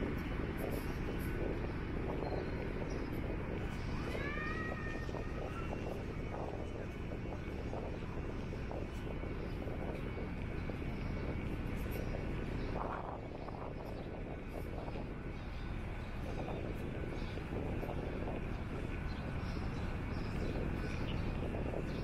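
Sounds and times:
wind rumble: 0:00.0 - 0:22.0.

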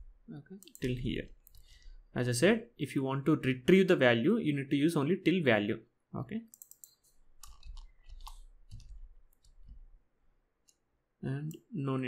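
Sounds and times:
computer keys clicking: 0:00.6 - 0:01.7, 0:06.4 - 0:09.9.

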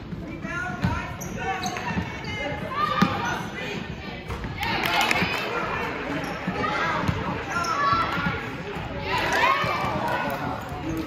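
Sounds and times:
voices shouting in a gym: 0:00.0 - 0:11.0.

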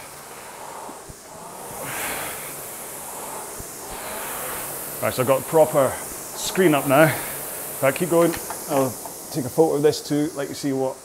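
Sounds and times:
rowing machine flywheel whirring: 0:00.0 - 0:11.0.

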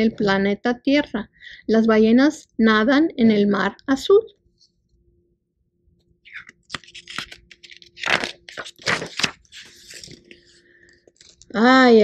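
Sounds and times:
paper pages turning: 0:06.3 - 0:11.6.

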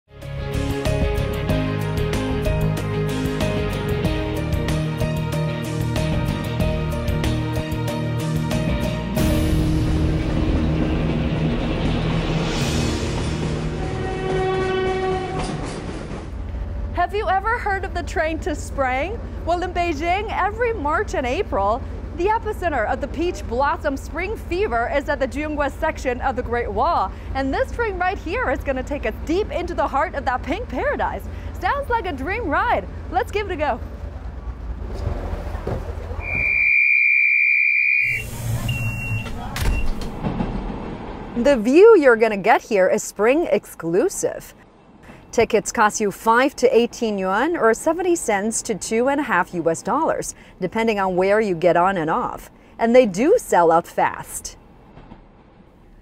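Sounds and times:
background music: 0:00.1 - 0:15.4
passenger train running past: 0:00.9 - 0:36.2, 0:38.1 - 0:56.0
door warning buzzer beeps: 0:36.2 - 0:40.0.

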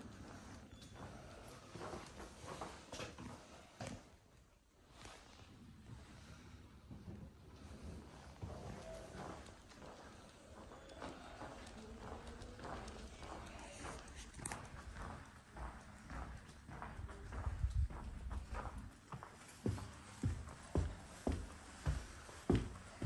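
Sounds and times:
footsteps on hard floor: 0:18.4 - 0:23.0.

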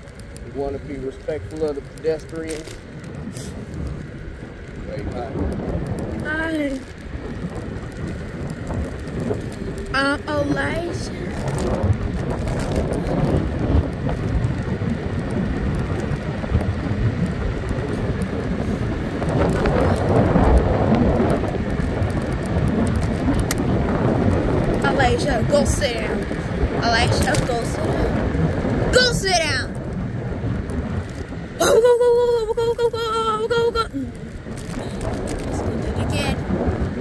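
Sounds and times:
scooter tyre noise: 0:00.0 - 0:37.0
wind buffeting microphone: 0:00.0 - 0:37.0.

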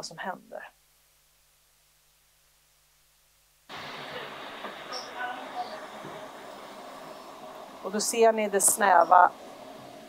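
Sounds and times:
steady hiss: 0:00.0 - 0:10.0
faint voices: 0:03.8 - 0:09.3.

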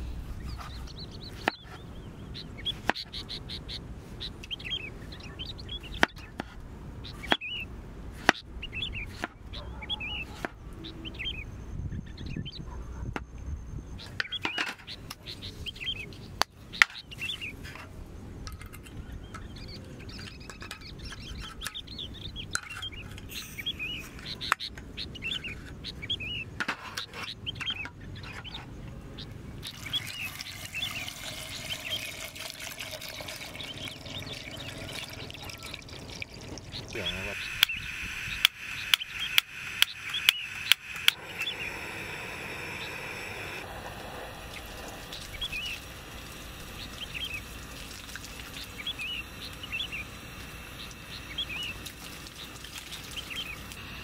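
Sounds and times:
birds chirping: 0:00.0 - 0:54.0
stove igniter clicking: 0:37.6 - 0:41.5.

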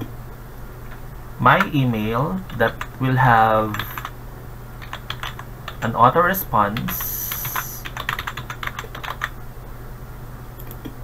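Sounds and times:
computer keyboard typing: 0:02.4 - 0:03.0, 0:03.6 - 0:04.1, 0:04.8 - 0:06.0, 0:06.7 - 0:09.4.

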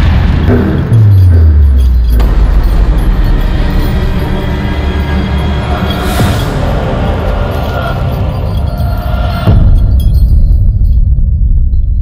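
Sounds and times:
dense noisy layer: 0:00.0 - 0:11.8
low rumbling drone: 0:00.0 - 0:12.0.

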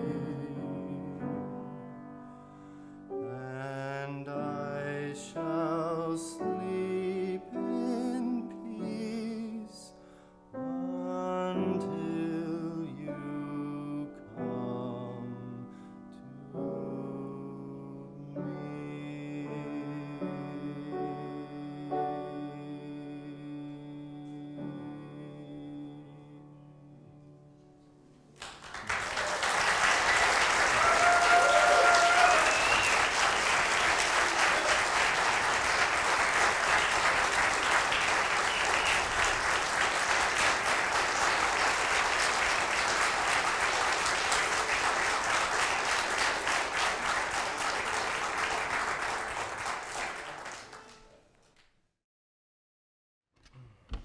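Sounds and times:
crowd cheering: 0:28.4 - 0:51.2
audience applauding: 0:28.4 - 0:51.6.

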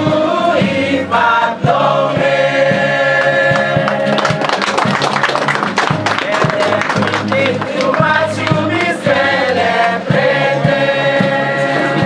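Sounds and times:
choir singing long notes: 0:00.0 - 0:04.7, 0:06.2 - 0:12.0.

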